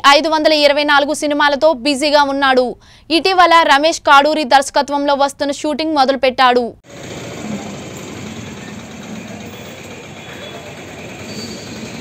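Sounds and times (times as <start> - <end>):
outdoor background noise: 0.0 - 12.0
distant voices talking: 7.0 - 12.0.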